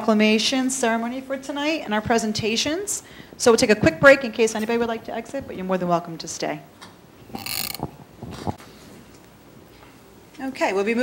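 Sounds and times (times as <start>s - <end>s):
microphone handling rustle: 7.3s - 9.1s.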